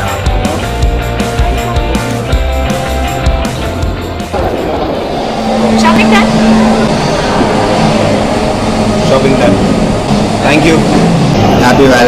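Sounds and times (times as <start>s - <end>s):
indistinct voices talking: 0.0s - 12.0s
loud background noise: 0.0s - 12.0s.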